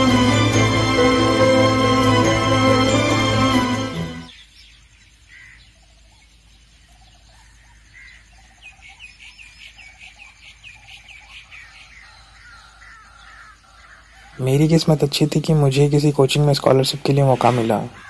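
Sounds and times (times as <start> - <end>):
faint bird calls: 5.2 - 15.0, 17.2 - 18.0.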